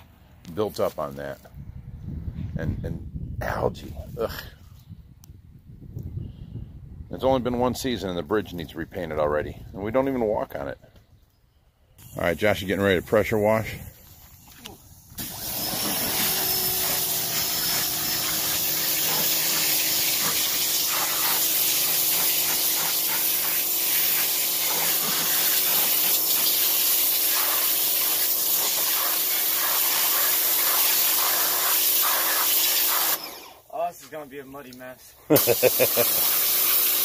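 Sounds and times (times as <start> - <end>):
pressure washer running: 15.1 - 33.7, 35.4 - 37.0.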